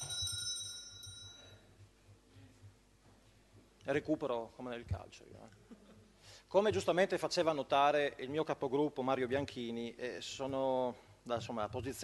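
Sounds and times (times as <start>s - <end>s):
small metal bell ringing: 0.0s - 1.6s.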